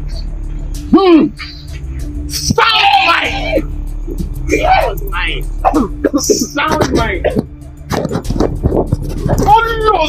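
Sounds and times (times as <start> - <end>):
man's voice rising: 2.3 - 3.7, 4.4 - 7.2.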